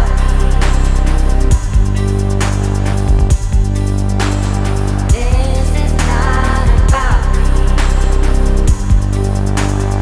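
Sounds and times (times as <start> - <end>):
synth bass: 0.0 - 10.0.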